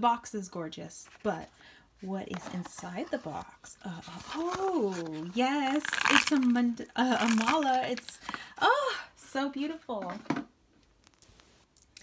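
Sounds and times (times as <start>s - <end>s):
person speaking: 0.0s - 10.3s.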